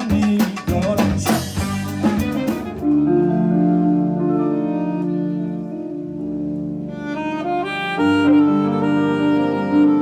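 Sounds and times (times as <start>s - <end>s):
drum kit and hand percussion: 0.0s - 3.2s
guitar and bass: 0.7s - 10.0s
wind instruments holding notes: 1.6s - 10.0s.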